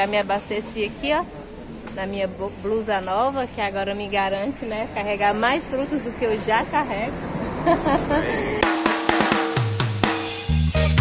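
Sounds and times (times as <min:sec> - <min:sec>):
laughter: 0:07.6 - 0:08.8
drum kit with snare hits: 0:08.6 - 0:11.0
bass line: 0:10.4 - 0:11.0.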